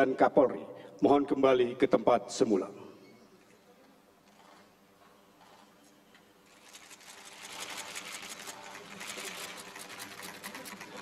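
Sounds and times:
rapid irregular clicking: 6.5s - 11.0s.

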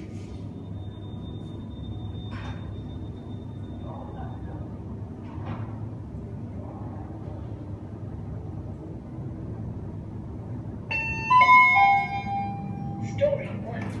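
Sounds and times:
elevator humming: 7.5s - 14.0s.

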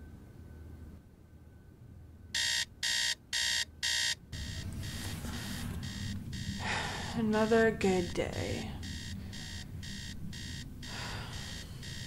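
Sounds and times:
alarm clock beeping: 2.4s - 12.0s.

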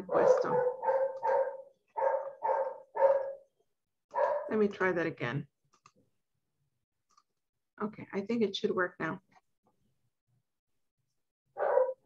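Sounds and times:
dog barking: 0.0s - 3.5s, 4.1s - 4.5s, 11.6s - 12.0s.

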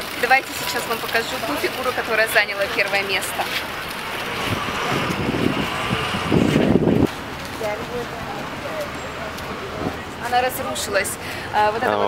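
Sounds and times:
wind buffeting microphone: 2.7s - 10.3s.

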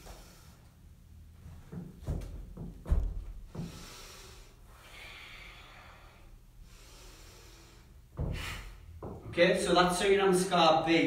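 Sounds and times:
man breathing through nose: 3.5s - 8.9s.

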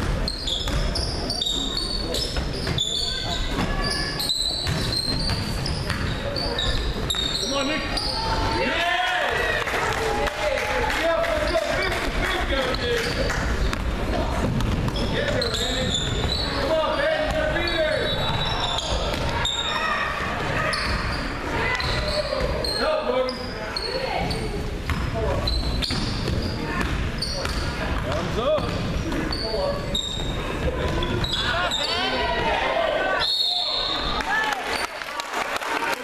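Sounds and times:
sneakers squeaking: 0.0s - 8.8s, 11.3s - 35.0s
voices of players and spectators: 0.0s - 36.0s
basketball bouncing on hardwood: 13.6s - 16.4s.

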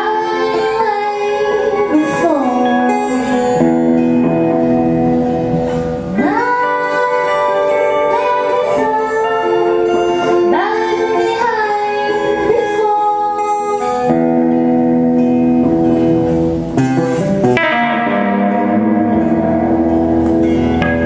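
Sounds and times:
woman singing: 0.0s - 4.3s, 6.1s - 14.2s
acoustic guitar: 0.0s - 21.0s.

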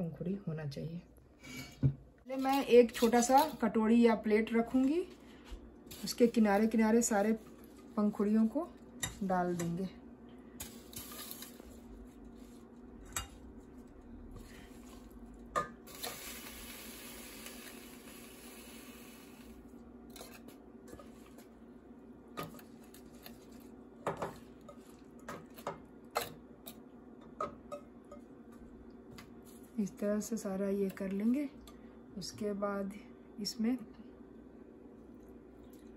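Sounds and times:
steady low hum: 0.0s - 35.9s.

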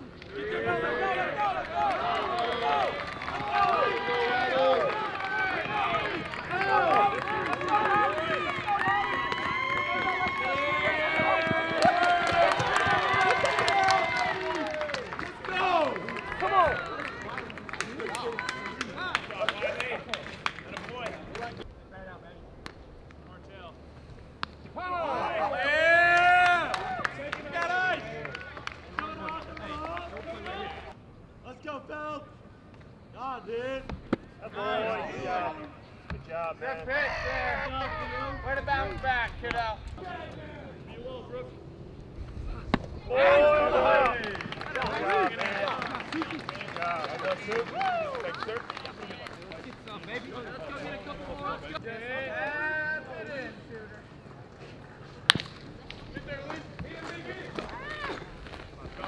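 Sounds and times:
crowd yelling and cheering: 0.2s - 21.1s, 24.8s - 31.0s, 43.0s - 53.7s, 56.2s - 59.0s
people clapping: 1.4s - 21.6s, 26.0s - 31.0s, 43.7s - 51.8s.

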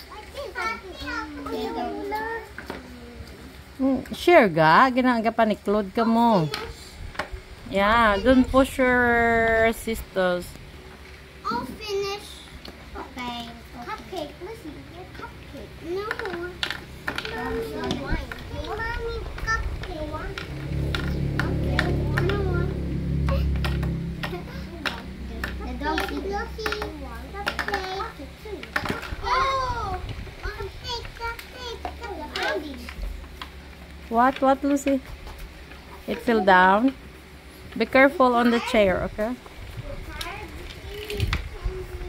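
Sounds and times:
children's voices: 0.0s - 3.5s, 7.7s - 9.2s, 11.4s - 33.1s, 39.7s - 42.0s
low steady hum: 0.0s - 42.0s
plastic toys on wooden table: 6.3s - 7.4s, 15.1s - 22.6s, 23.3s - 29.4s, 30.9s - 38.7s.

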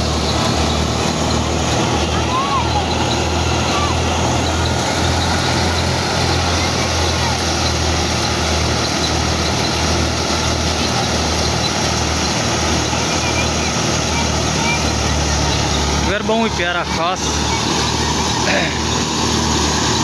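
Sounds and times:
threshing machine running: 0.0s - 20.0s
tractor engine humming: 0.0s - 20.0s.

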